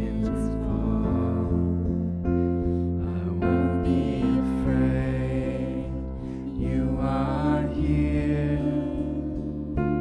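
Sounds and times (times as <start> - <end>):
worship band playing slow song: 0.0 - 10.0.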